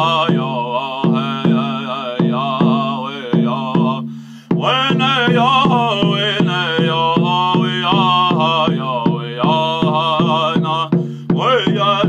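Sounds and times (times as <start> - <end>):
drum struck with a stick: 0.0 - 12.0
man chanting: 0.0 - 12.0.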